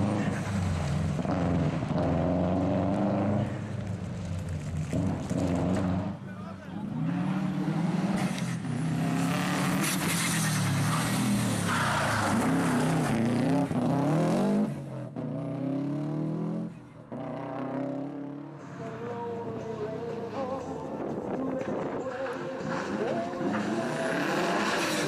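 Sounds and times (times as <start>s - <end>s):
rally car engine revving: 0.0s - 20.6s, 21.2s - 25.0s.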